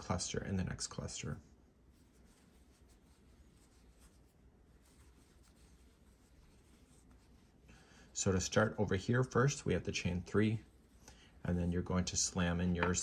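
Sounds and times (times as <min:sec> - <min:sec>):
yarn scratching on crochet hook: 0:01.9 - 0:13.0.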